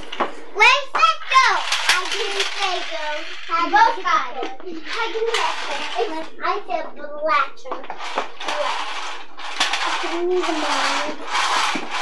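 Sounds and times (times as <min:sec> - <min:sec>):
children calling and chattering: 0:00.0 - 0:09.2, 0:09.8 - 0:12.0.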